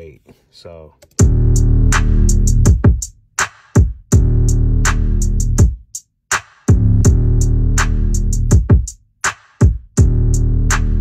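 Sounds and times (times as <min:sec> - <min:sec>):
hip-hop drum-machine beat: 0:01.1 - 0:11.0
heavy bass notes: 0:01.2 - 0:03.1, 0:04.1 - 0:05.7, 0:06.7 - 0:08.8, 0:10.0 - 0:11.0.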